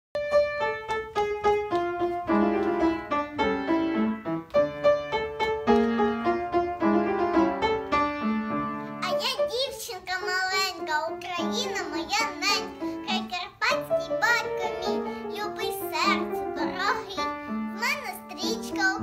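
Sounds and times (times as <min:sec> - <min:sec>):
piano playing notes and chords: 0:00.2 - 0:19.0.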